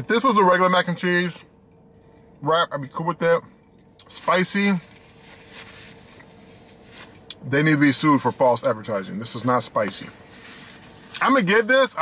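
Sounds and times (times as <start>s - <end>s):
faint steady hum: 0.0s - 12.0s
faint rustling hiss: 4.0s - 12.0s.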